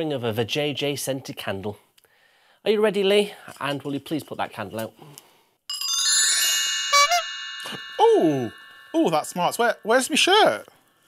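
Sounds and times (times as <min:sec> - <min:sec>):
bright chime: 0:05.7 - 0:10.8.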